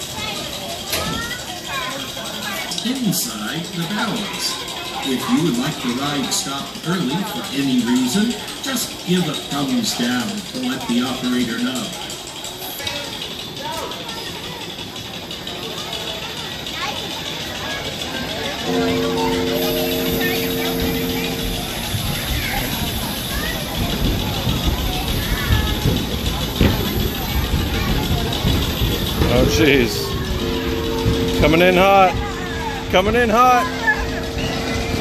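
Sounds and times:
low rumbling of ride: 0:00.0 - 0:35.0
scattered voices: 0:00.0 - 0:35.0
steady multi-note tone: 0:18.6 - 0:23.2, 0:29.2 - 0:35.0.

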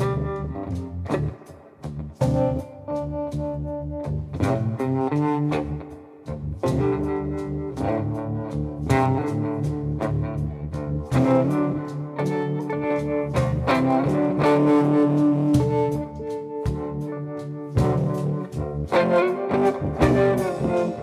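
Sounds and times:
electric guitar through amplifier: 0:00.0 - 0:21.0.

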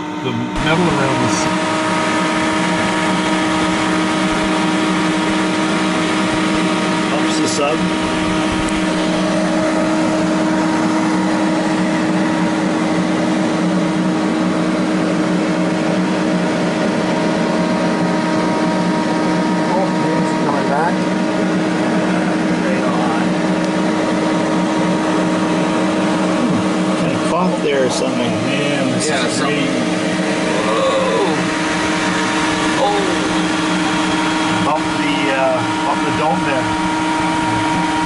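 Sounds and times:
steady machinery hum: 0:00.0 - 0:38.0.

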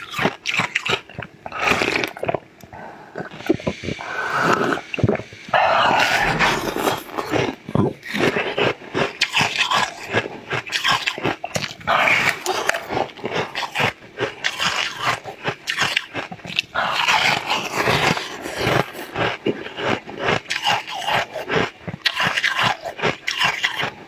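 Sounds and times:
biting and chewing sweet: 0:00.0 - 0:24.0.

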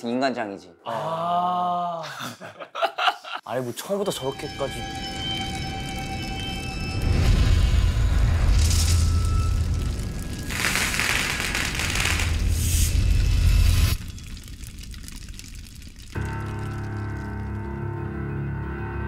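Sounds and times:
soft music with sustained notes: 0:03.9 - 0:07.4, 0:16.2 - 0:19.0.

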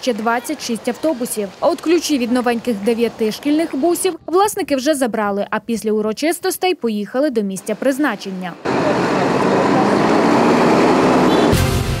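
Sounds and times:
bus engine rumbling: 0:07.5 - 0:12.0.

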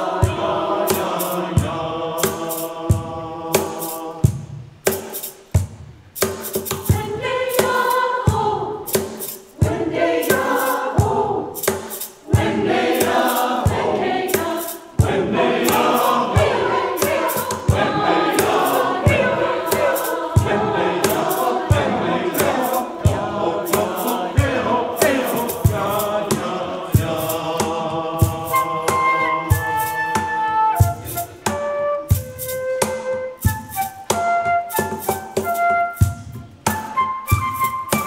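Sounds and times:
choir singing in parts: 0:00.0 - 0:04.4, 0:06.6 - 0:32.2
hand percussion beat: 0:00.0 - 0:38.0.

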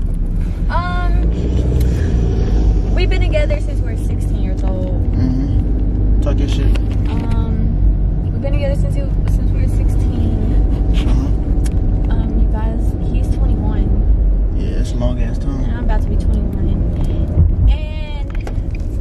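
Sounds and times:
car road and engine rumble: 0:00.0 - 0:19.0
voices talking: 0:02.9 - 0:05.6, 0:06.2 - 0:11.4.

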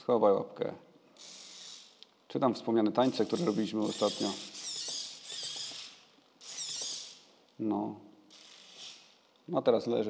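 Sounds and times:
servo motors whining: 0:01.2 - 0:02.0, 0:03.0 - 0:07.3, 0:08.3 - 0:09.1.

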